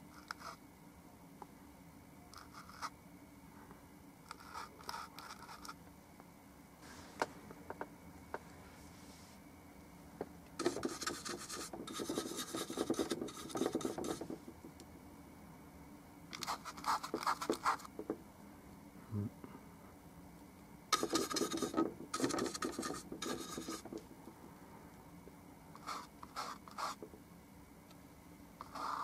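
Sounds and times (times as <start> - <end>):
paintbrush scrubbing paint: 10.6 - 14.4, 21.0 - 24.0.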